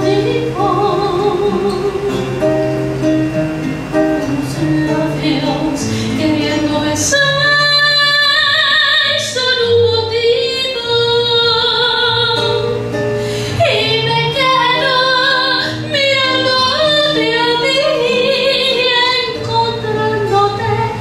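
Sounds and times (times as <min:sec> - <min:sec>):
woman singing with vibrato: 0:00.0 - 0:02.8, 0:03.8 - 0:21.0
acoustic guitar strummed and plucked: 0:00.0 - 0:21.0.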